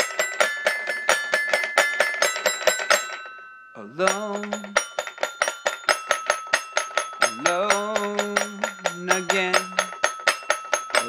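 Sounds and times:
toy xylophone bell-like notes: 0.0s - 11.0s.

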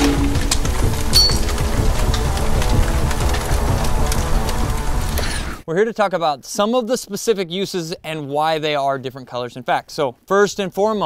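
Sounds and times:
dense rumbling noise: 0.0s - 5.6s
crackles: 0.0s - 11.0s.

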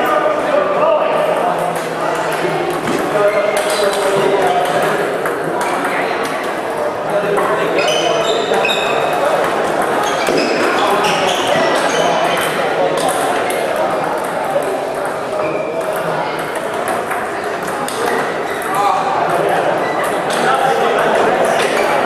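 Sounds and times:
murmur of voices: 0.0s - 22.0s
table tennis balls clicking: 1.6s - 6.5s, 8.8s - 22.0s.

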